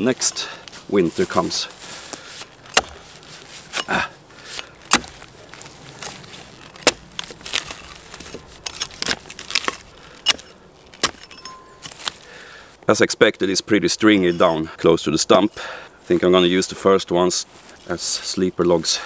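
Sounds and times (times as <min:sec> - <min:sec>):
log splitting: 0:00.6 - 0:12.4
axe chopping wood: 0:02.7 - 0:04.0, 0:04.6 - 0:05.2, 0:06.8 - 0:07.7, 0:08.9 - 0:12.1.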